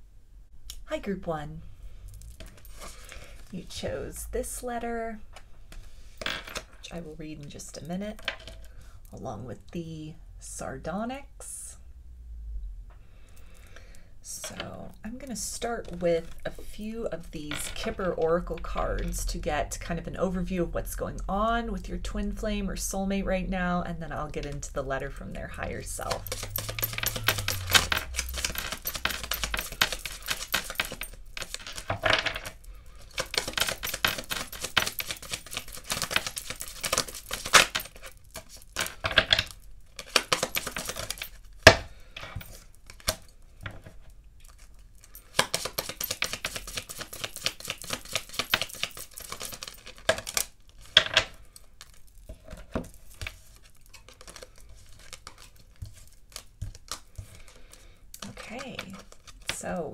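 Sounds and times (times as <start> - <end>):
cards shuffling: 2.2 - 3.5, 25.5 - 59.7.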